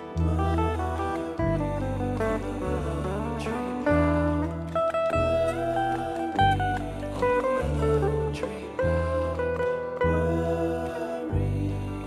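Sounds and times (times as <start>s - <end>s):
electric guitar solo: 0.0s - 10.3s.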